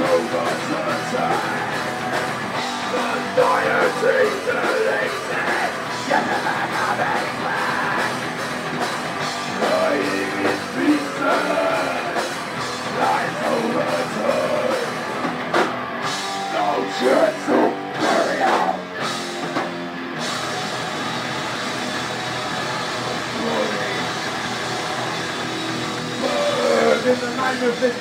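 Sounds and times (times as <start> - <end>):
heavy metal band playing live: 0.0 - 28.0.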